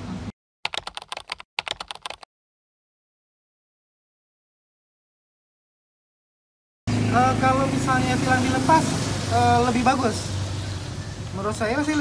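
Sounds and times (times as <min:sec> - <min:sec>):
keyboard keystroke clicks: 0:00.7 - 0:02.2.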